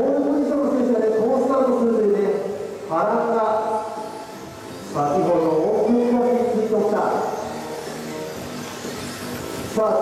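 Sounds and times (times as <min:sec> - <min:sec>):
man commentating over public address: 0:00.0 - 0:04.1, 0:04.9 - 0:07.5, 0:09.8 - 0:10.0.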